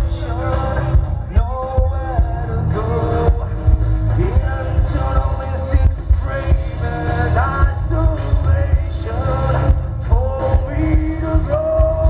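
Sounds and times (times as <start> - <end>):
live hard rock band: 0.0 - 12.0
man singing: 0.0 - 12.0.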